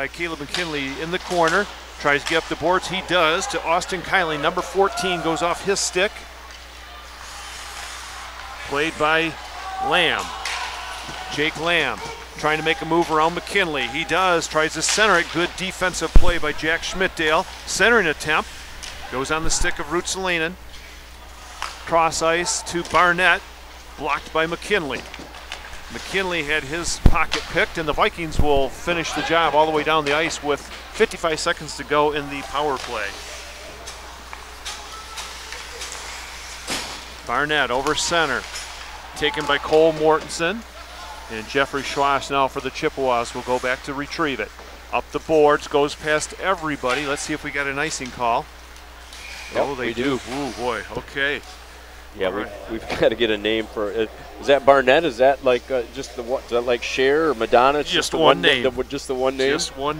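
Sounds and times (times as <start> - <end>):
arena hum: 0.0 - 59.9
skates hissing on ice: 7.2 - 8.3.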